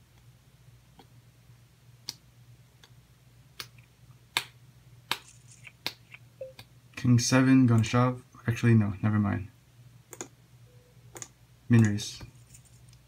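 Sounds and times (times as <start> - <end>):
faint low steady hum: 0.0 - 13.0.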